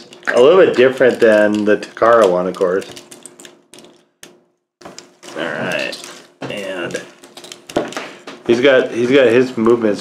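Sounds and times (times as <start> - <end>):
person speaking: 0.0 - 3.0, 5.2 - 7.2
plastic toy parts clicking: 0.0 - 5.1.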